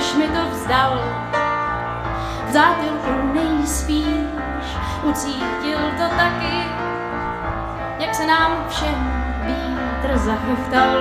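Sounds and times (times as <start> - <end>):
woman singing: 0.0 - 1.3, 2.4 - 7.0, 8.0 - 11.0
electric keyboard chords: 0.0 - 11.0.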